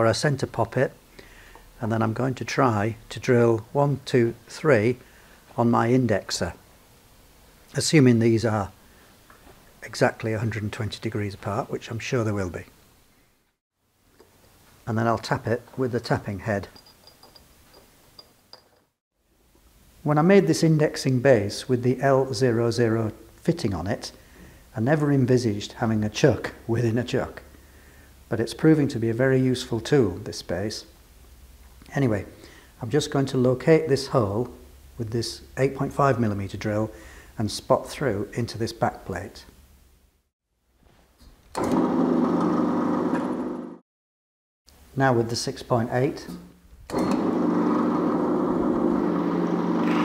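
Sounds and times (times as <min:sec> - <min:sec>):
pillar drill running: 0:41.6 - 0:43.8, 0:46.9 - 0:50.0.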